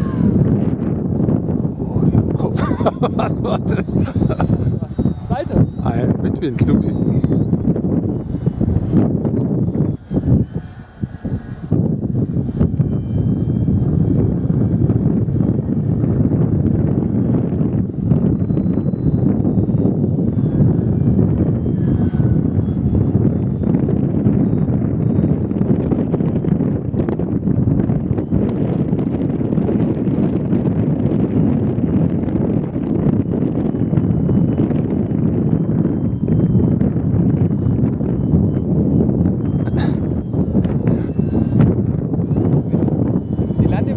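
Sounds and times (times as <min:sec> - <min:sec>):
model plane motor whine: 0:00.0 - 0:43.9
wind rumbling on microphone: 0:00.0 - 0:43.9.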